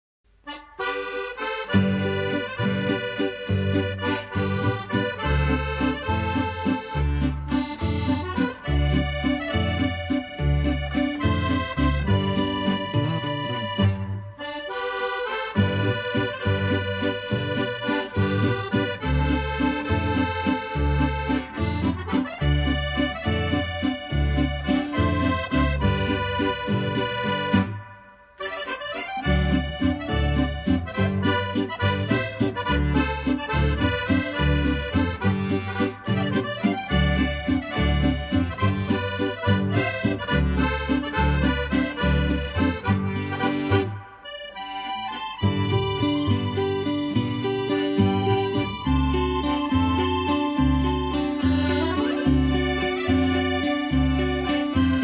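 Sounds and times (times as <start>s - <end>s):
accordion: 0.3s - 55.0s
double bass: 0.3s - 55.0s
guitar: 0.3s - 55.0s.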